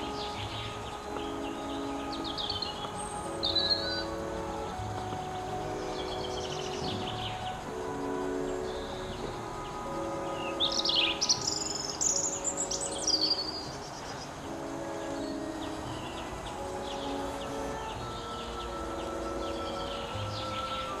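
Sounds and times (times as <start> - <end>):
birds chirping: 0.0 - 21.0
soft music of held chords: 0.0 - 21.0.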